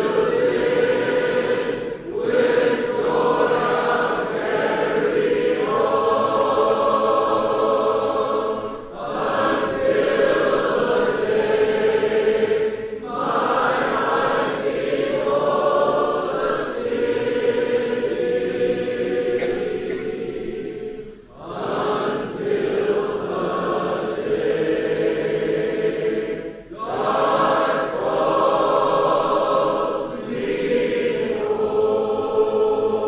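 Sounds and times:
choir singing long chords: 0.0s - 33.0s.

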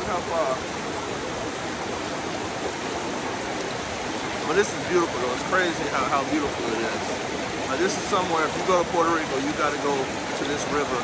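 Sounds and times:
river rushing over rapids: 0.0s - 11.0s.

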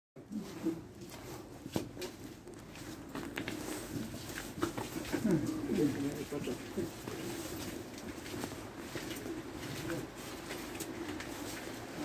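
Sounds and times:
footsteps: 0.2s - 12.0s.

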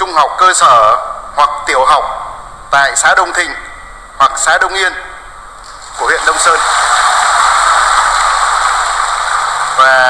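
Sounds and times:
audience applauding: 5.9s - 10.0s.

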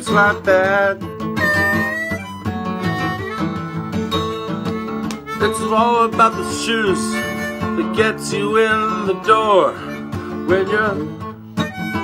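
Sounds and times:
acoustic guitar strumming blues: 0.0s - 12.0s
harmonica held notes: 0.0s - 12.0s
person singing: 5.3s - 12.0s.

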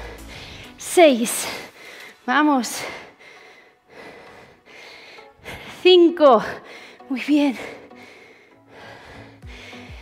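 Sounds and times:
woman breathing hard: 0.0s - 10.0s.

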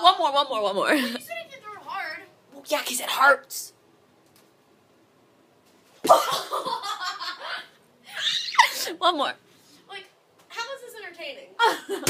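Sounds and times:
woman squealing with laughter: 6.1s - 8.9s.

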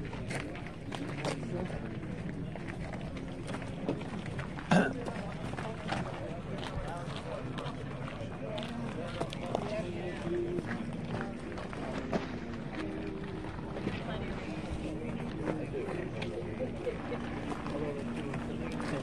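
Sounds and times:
background chatter: 0.0s - 19.0s
footsteps on gravel: 0.1s - 16.4s.

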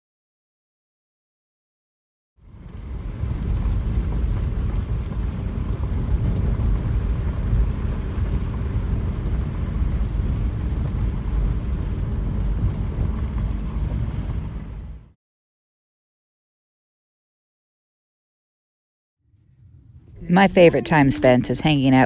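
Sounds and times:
car driving on gravel road: 2.4s - 15.1s
gravel crackle: 2.4s - 15.1s
wind noise: 2.4s - 15.1s.

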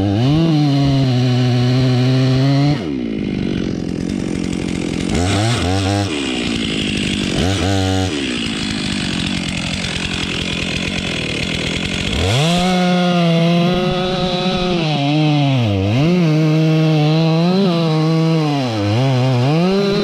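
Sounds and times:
chainsaw cutting wood: 0.0s - 20.0s
chainsaw idling and revving: 0.0s - 20.0s.

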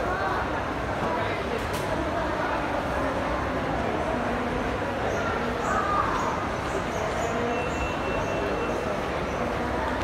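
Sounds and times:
indoor crowd chatter: 0.0s - 10.0s.

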